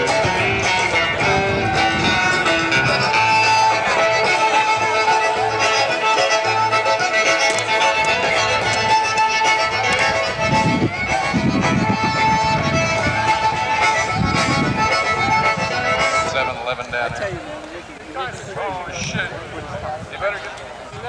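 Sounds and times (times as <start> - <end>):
acoustic bluegrass music: 0.0 - 20.9.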